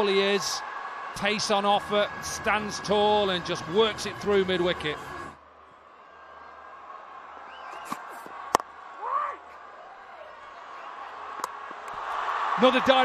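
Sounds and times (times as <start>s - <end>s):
stadium crowd noise: 0.0s - 13.0s.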